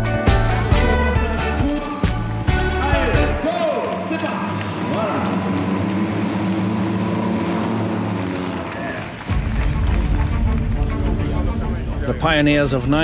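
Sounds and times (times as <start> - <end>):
racing car engines droning: 3.1 - 12.3.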